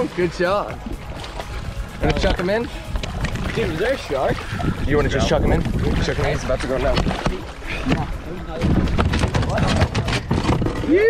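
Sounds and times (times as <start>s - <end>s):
wind rumble on microphone: 0.7s - 11.0s
fish knocking and thumping on deck: 6.9s - 11.0s.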